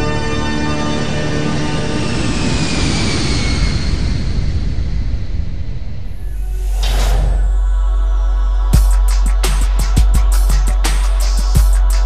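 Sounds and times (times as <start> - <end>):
rumbling whoosh: 1.4 - 12.0.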